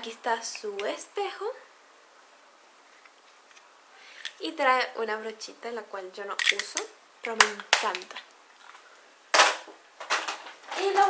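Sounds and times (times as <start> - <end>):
sharp crack: 6.4 - 8.2.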